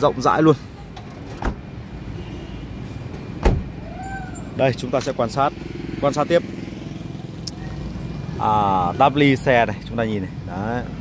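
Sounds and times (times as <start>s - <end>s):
sharp thump: 3.4s - 3.7s.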